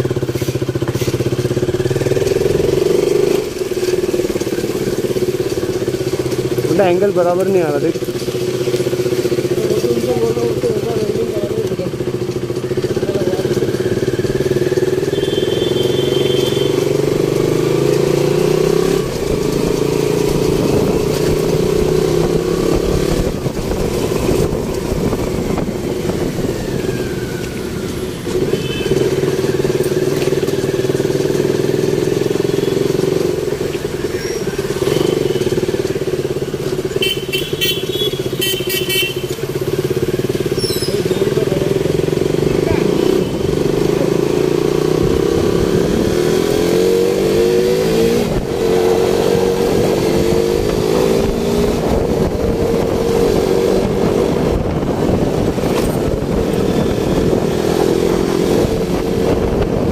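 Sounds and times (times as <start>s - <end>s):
small motorbike engine running: 0.0s - 59.9s.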